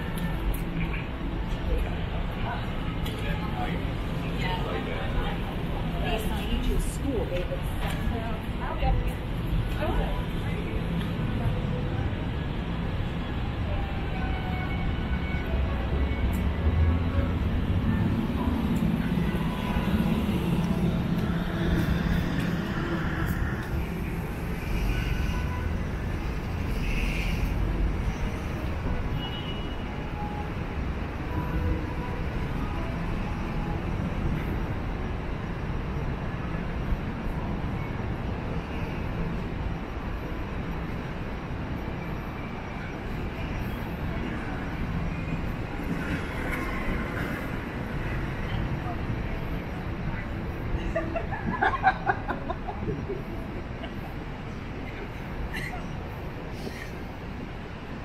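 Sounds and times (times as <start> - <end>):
passers-by talking: 0.0 - 29.2, 29.8 - 58.0
traffic rumble: 0.0 - 58.0.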